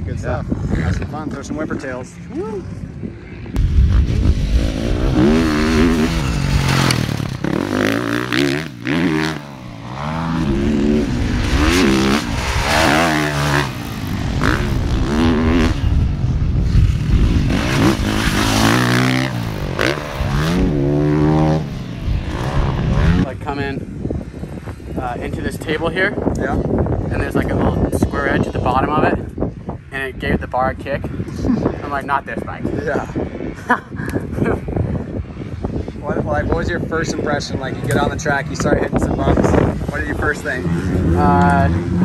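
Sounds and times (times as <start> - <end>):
motocross bike engine revving: 3.6 - 23.4, 37.8 - 42.0.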